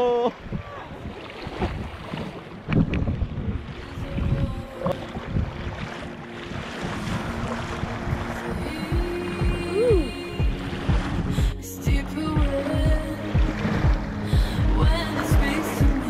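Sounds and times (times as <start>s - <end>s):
water splashing against kayak: 0.0s - 16.0s
wind buffeting microphone: 0.2s - 16.0s.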